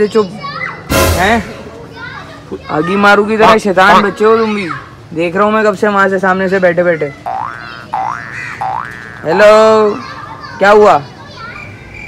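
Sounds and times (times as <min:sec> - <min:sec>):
cartoon boing effects: 0:07.2 - 0:09.4.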